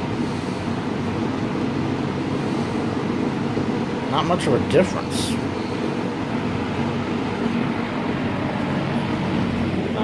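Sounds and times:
box fan whirring: 0:00.0 - 0:10.0.

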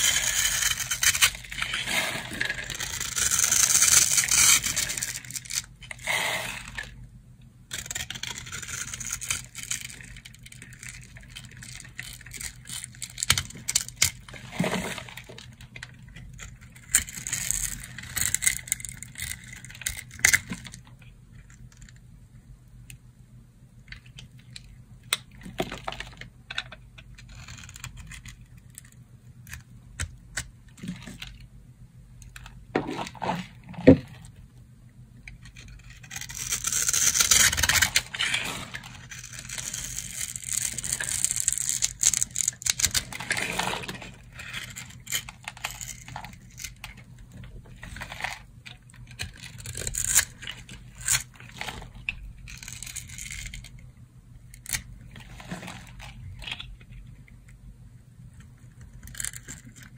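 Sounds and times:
knife crunching through dry soap: 0:00.0 - 0:06.8, 0:07.7 - 0:15.2, 0:35.6 - 0:46.8.

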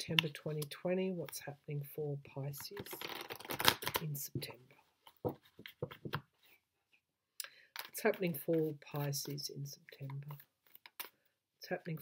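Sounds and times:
cards being shuffled: 0:02.5 - 0:04.2, 0:05.0 - 0:06.6.

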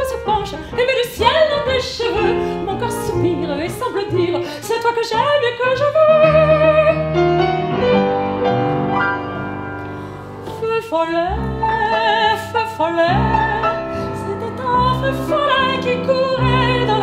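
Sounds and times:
woman singing with vibrato: 0:00.0 - 0:07.2, 0:10.5 - 0:17.0
double bass: 0:00.0 - 0:17.0
upright piano: 0:00.0 - 0:17.0.

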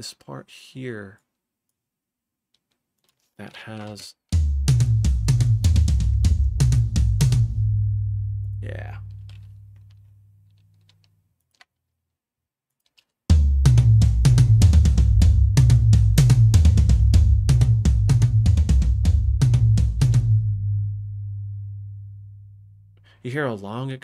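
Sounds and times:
fast tom drum hits: 0:04.4 - 0:07.6.

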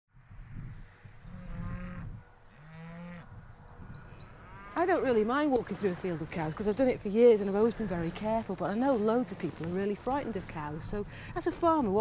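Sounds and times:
cows mooing: 0:01.2 - 0:06.6, 0:07.4 - 0:09.6.

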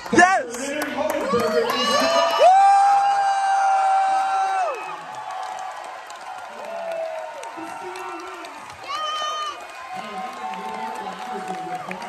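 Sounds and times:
audience cheering and whooping: 0:01.1 - 0:12.0.

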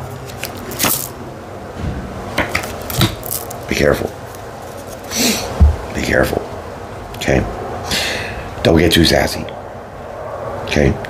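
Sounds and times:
cards rustling: 0:00.0 - 0:01.2, 0:02.6 - 0:05.6
cards clicking: 0:00.2 - 0:01.2.

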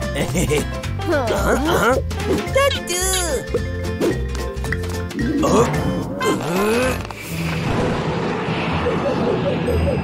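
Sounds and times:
soft background music: 0:00.0 - 0:07.4
cartoon rumbling jolt: 0:06.3 - 0:10.0.

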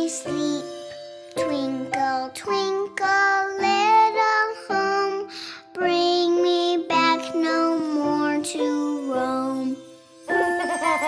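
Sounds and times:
child singing: 0:00.0 - 0:11.0.

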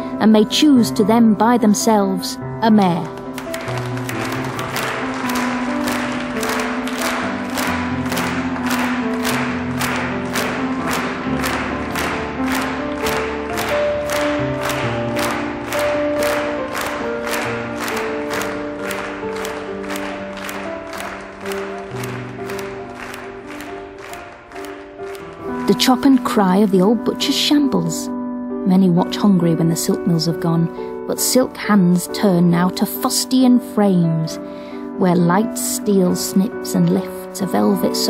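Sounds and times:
music with sustained notes: 0:00.0 - 0:38.0.

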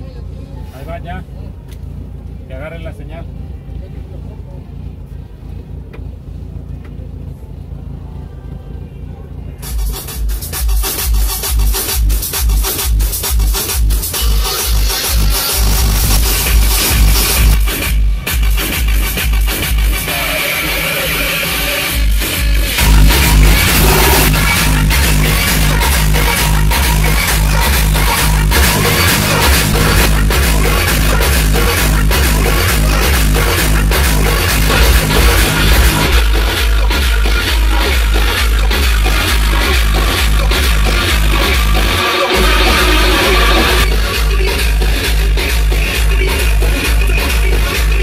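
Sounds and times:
heavy pulsing bass: 0:01.2 - 0:48.0
loud electronic dance music: 0:09.6 - 0:48.0.

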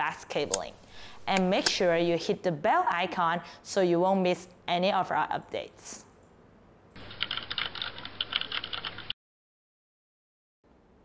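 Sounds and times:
computer keyboard typing: 0:07.0 - 0:09.2.

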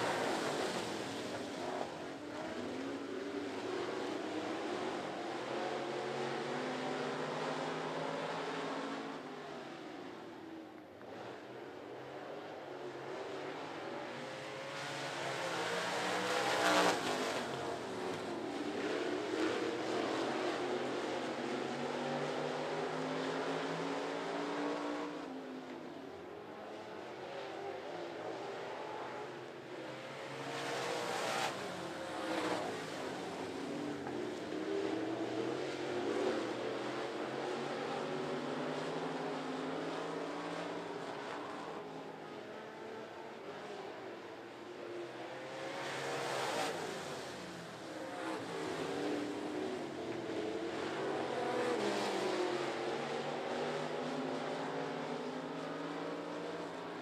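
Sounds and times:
race car engines passing: 0:00.0 - 0:10.2, 0:11.0 - 0:57.0.

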